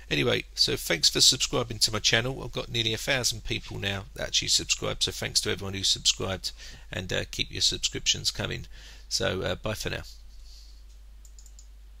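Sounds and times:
low electrical hum and hiss: 0.0s - 12.0s
computer mouse clicks: 10.9s - 11.7s.

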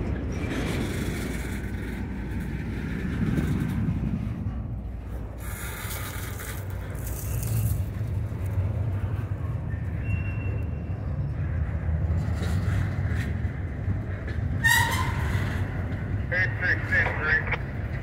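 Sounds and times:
train wheels rumbling on rails: 0.0s - 18.0s.

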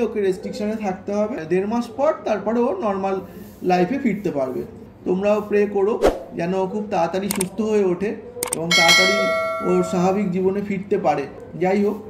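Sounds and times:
bright bell ding: 8.6s - 10.5s.

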